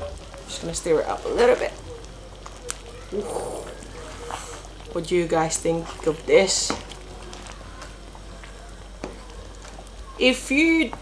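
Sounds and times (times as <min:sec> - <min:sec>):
pan simmering: 0:00.0 - 0:11.0.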